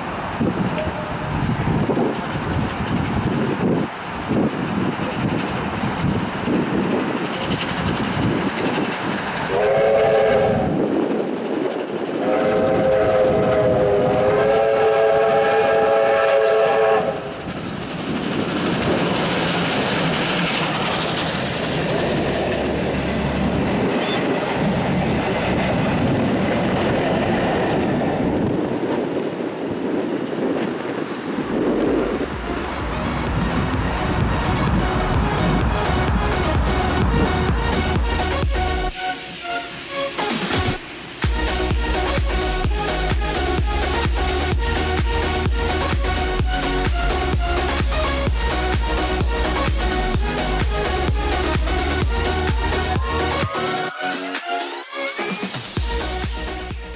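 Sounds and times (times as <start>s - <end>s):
train rumble and wheel clatter: 0.0s - 56.9s
steam locomotive whistle: 9.5s - 10.8s, 12.2s - 17.4s, 37.7s - 42.6s.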